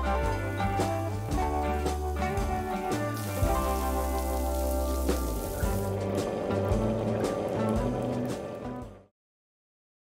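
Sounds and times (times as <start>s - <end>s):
background music with held chords: 0.0s - 9.1s
water spraying from shower head: 0.4s - 8.4s.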